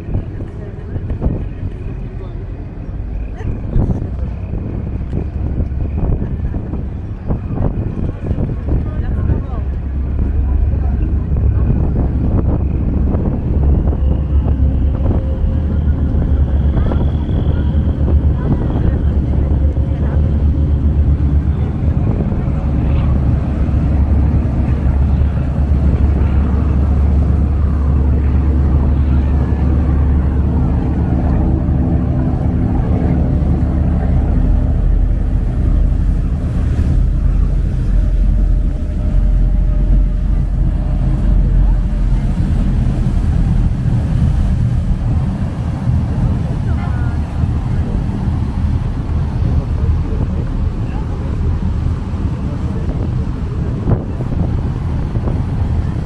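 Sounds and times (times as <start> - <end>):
ferry engine rumble: 0.0 - 56.0
propeller wash churning: 0.0 - 56.0.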